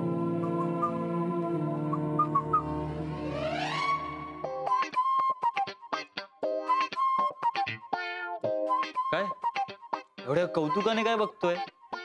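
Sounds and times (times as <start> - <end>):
low drone music: 0.0 - 4.6.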